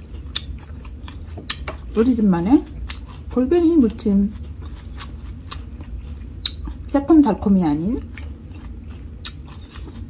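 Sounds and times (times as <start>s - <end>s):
mouth clicks and smacks eating: 0.0s - 2.0s, 2.6s - 7.0s, 8.0s - 10.0s
low steady rumble: 0.0s - 10.0s.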